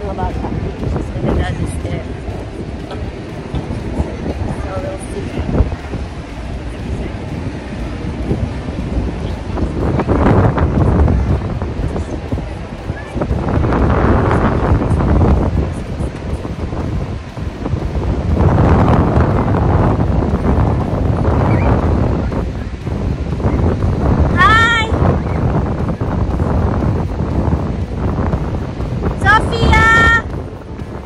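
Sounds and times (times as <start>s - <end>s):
gusty wind buffeting microphone: 0.0s - 31.0s.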